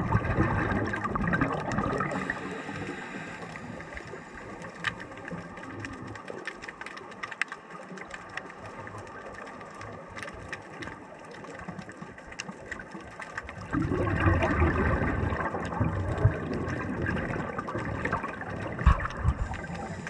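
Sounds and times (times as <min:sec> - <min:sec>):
rush of bubbling water: 0:00.0 - 0:20.0
faint underwater hiss: 0:01.8 - 0:05.8, 0:18.8 - 0:20.0.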